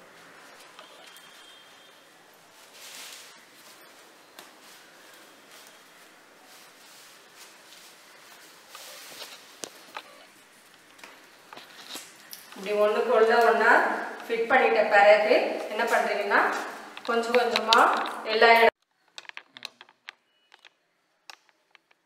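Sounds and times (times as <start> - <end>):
cloth rustling: 0.1 - 12.9.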